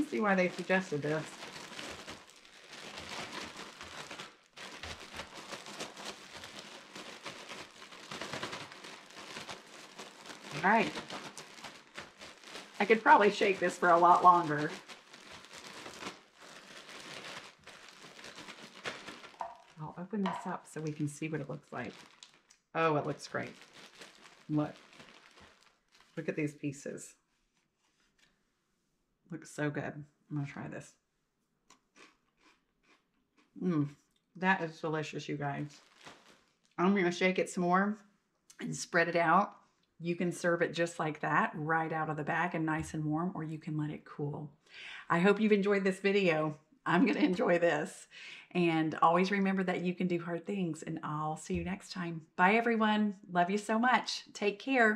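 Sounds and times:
cereal rattling in plastic bag: 0.0 - 19.8, 20.9 - 26.2, 35.7 - 36.7
plastic bag crinkling: 0.0 - 26.4, 35.6 - 36.8, 46.9 - 47.6
person chewing crunchy snack: 1.4 - 12.8, 31.7 - 33.6.

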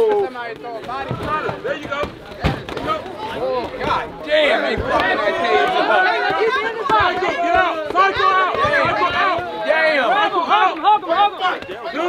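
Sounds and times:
men shouting: 3.0 - 12.0.

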